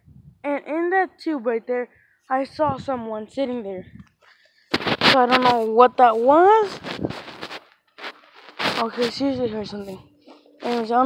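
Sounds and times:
boy speaking: 0.4s - 4.0s, 5.0s - 7.0s, 8.8s - 11.0s
rustling: 4.2s - 11.0s.

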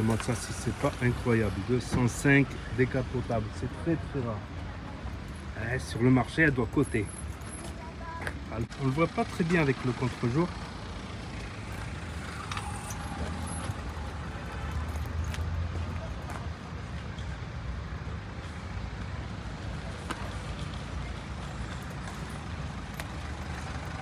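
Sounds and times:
motor vehicle rumbling: 0.0s - 24.0s.

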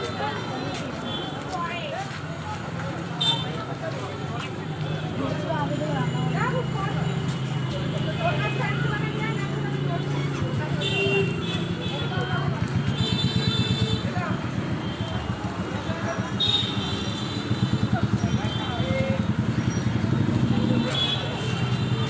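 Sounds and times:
people talking: 0.0s - 22.0s
street traffic: 0.0s - 22.0s.

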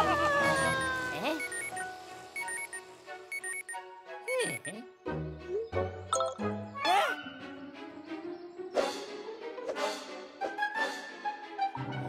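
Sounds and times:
cartoon background music: 0.0s - 12.0s
electronic alarm beeping: 0.5s - 4.7s.

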